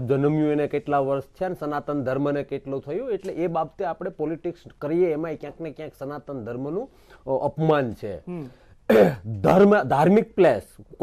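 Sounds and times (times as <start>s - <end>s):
man speaking: 0.0s - 11.0s
throat clearing: 8.9s - 9.3s.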